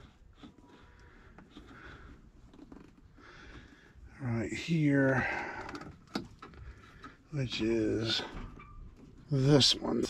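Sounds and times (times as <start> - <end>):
faint breathing: 0.6 - 2.4, 3.1 - 4.2, 4.8 - 7.3.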